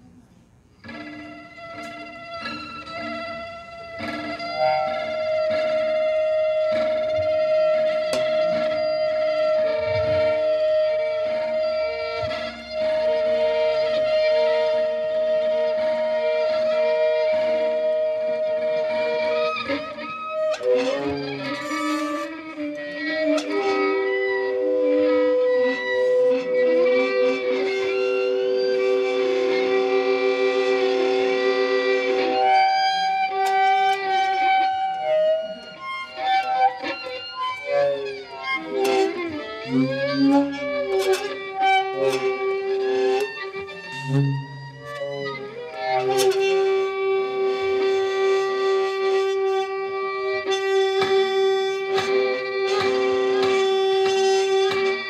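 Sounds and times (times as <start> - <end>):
saxophone improvising: 0.0 - 55.0
violin improvising: 0.0 - 55.0
sharp clicks and taps: 50.9 - 55.0.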